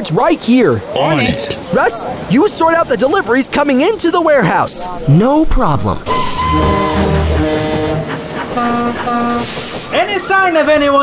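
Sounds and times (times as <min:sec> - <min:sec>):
high hiss: 0:06.0 - 0:07.4, 0:08.1 - 0:10.6.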